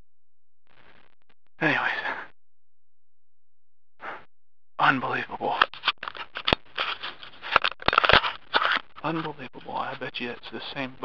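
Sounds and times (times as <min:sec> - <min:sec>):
rubbing on microphone: 0:05.4 - 0:10.4.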